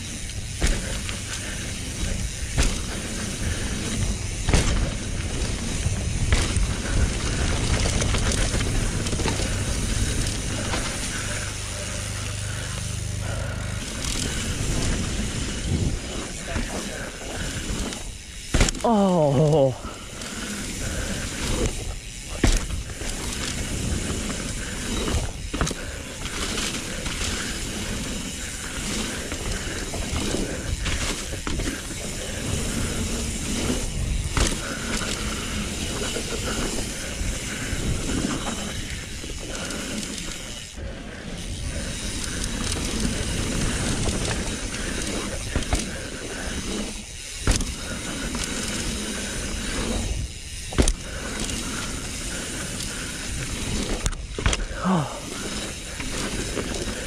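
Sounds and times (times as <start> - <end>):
bicycle freewheel ratcheting: 0.0 - 57.0
rushing noise on camera: 0.0 - 57.0
tyres rolling on dirt and leaves: 0.0 - 57.0
bike landing knocks: 4.4 - 7.0, 18.5 - 18.9, 22.3 - 22.8, 47.4 - 47.8, 50.7 - 51.0.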